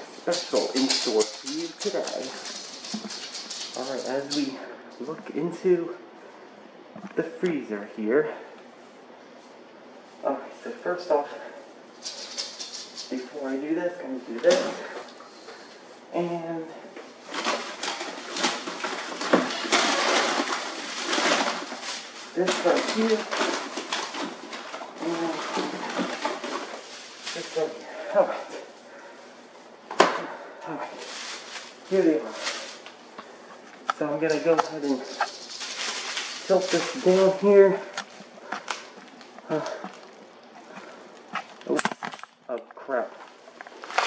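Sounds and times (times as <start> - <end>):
plastic bags rustling and crinkling: 0.0 - 5.5, 11.4 - 44.0.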